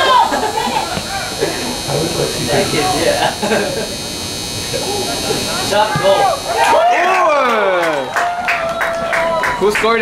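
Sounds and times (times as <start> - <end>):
high-pitched electrical buzz: 0.0 - 8.2
people talking and calling out: 0.0 - 9.1.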